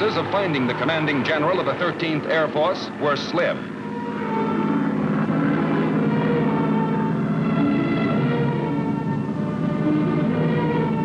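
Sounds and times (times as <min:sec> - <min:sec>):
propeller aircraft engines droning: 0:00.0 - 0:11.0.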